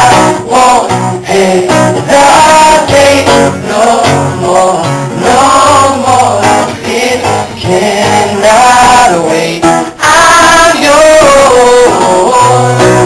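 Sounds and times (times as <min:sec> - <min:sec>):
man singing: 0:00.0 - 0:13.0
strummed acoustic guitar: 0:00.0 - 0:13.0.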